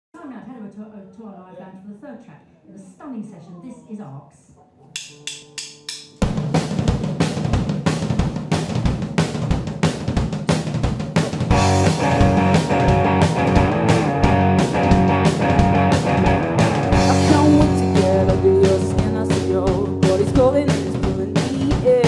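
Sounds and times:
drum kit beat: 5.0 - 22.0
electric guitar: 11.5 - 22.0.

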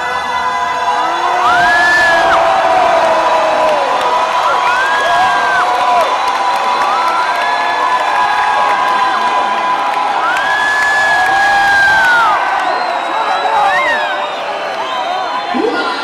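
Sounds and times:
crowd cheering and shouting: 0.0 - 16.0
high whoops: 0.2 - 16.0.

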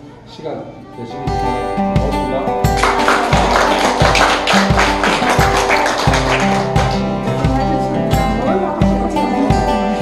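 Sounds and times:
background music with repeating bass: 1.8 - 10.0
people applauding: 2.8 - 7.3.

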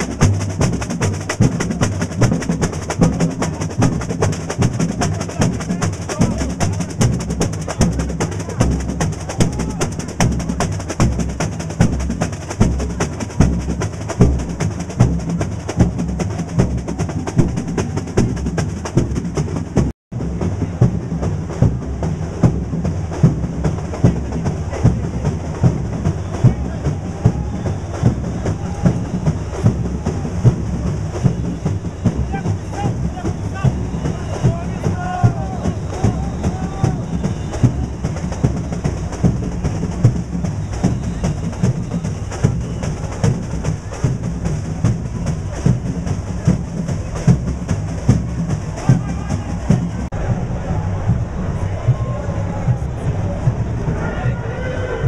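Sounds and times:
samba drum section playing: 0.0 - 54.8.

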